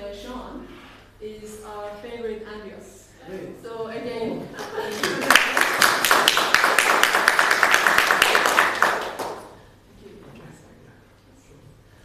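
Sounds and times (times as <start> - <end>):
audience applauding: 4.6 - 9.6.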